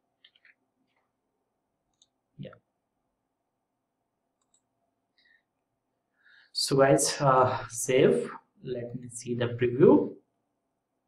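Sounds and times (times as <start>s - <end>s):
computer mouse clicks: 0.2s - 1.1s, 1.9s - 2.6s, 4.4s - 4.7s.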